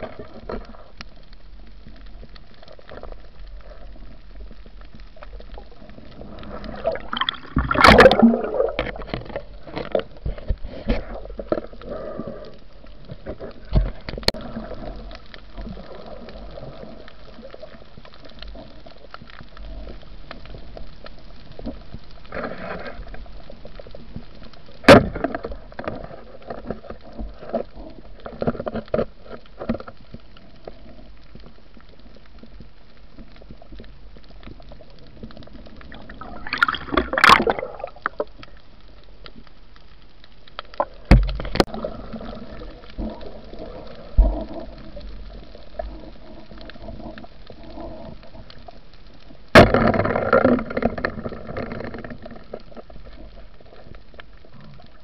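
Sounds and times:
underwater gurgling and bubbling: 0.0 - 55.0.

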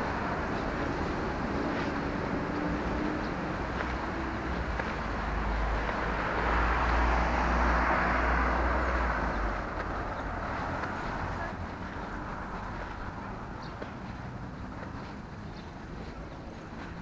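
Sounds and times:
car passing: 0.0 - 17.0.

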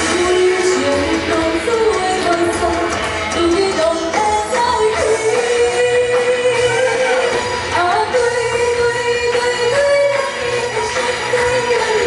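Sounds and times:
musical accompaniment: 0.0 - 12.0
woman singing into microphone: 0.0 - 12.0.

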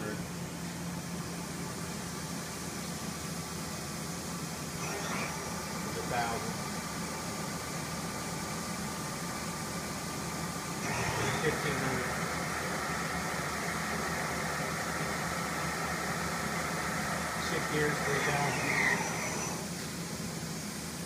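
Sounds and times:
machine spindle hum: 0.0 - 21.0.

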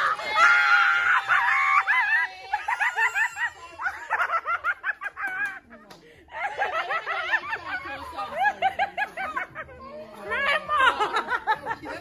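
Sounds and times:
women screaming in excitement: 0.0 - 4.7.

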